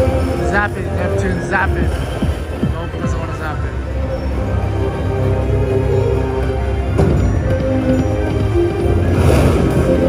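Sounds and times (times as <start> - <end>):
electronic slot machine tune: 0.0 - 10.0.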